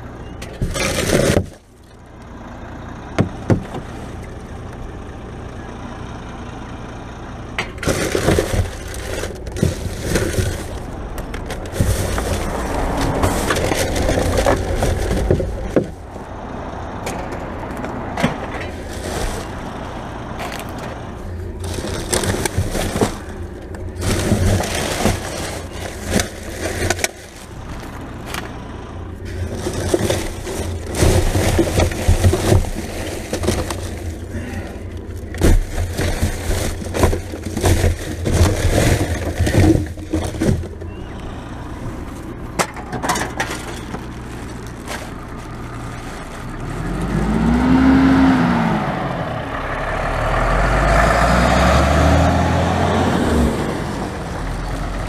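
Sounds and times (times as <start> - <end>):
knocks and scrapes: 0.4 - 1.8, 7.6 - 16.3, 17.0 - 41.1, 41.8 - 47.3
plastic bags rustling: 0.6 - 1.8, 7.8 - 16.2, 18.5 - 19.8, 20.4 - 41.0, 41.8 - 47.4.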